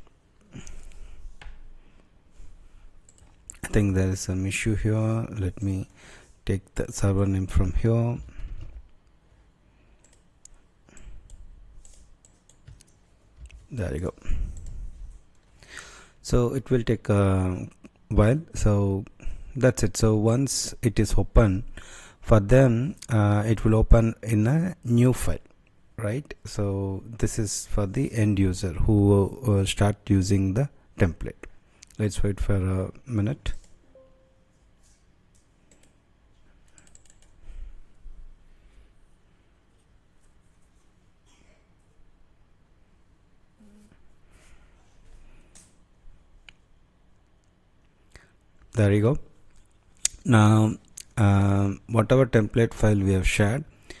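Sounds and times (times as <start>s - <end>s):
computer mouse and keyboard clicks: 10.0s - 13.6s, 36.6s - 37.4s.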